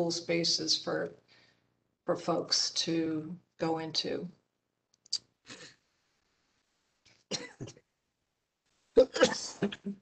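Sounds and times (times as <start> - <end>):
person coughing: 7.3 - 7.8, 9.1 - 9.7.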